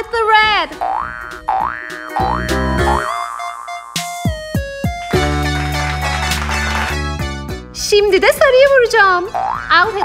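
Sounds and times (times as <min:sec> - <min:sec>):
bouncy background music: 0:00.0 - 0:10.0
cartoon boing sound effects: 0:00.8 - 0:04.0, 0:09.4 - 0:09.8.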